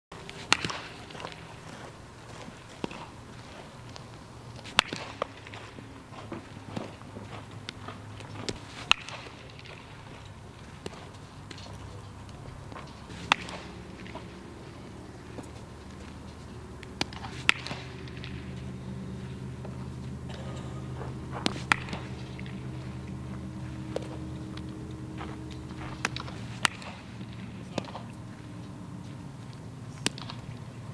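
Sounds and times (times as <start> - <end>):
low hum: 0.1 - 30.9
baseball cracks: 0.2 - 30.9.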